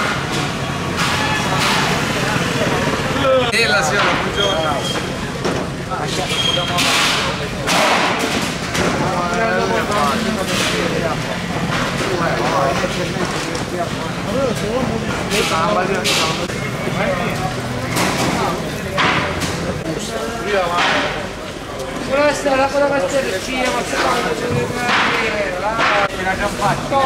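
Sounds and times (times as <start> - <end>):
voices talking and calling: 0.9 - 27.0.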